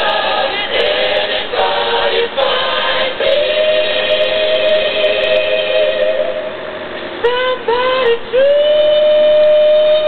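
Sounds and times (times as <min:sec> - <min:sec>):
choir singing: 0:00.0 - 0:06.6.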